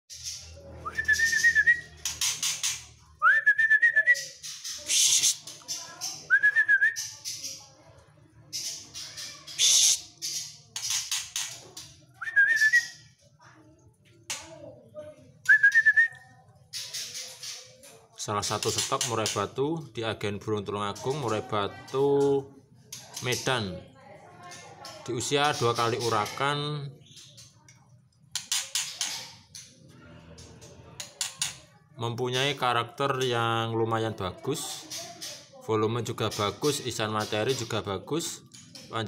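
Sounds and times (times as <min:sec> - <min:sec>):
harsh scratchy bird chatter: 0:00.1 - 0:03.2, 0:04.0 - 0:13.3, 0:15.3 - 0:39.0
bird whistling: 0:00.2 - 0:02.3, 0:03.2 - 0:05.4, 0:06.3 - 0:07.1, 0:09.5 - 0:10.0, 0:12.2 - 0:13.0, 0:15.4 - 0:16.3.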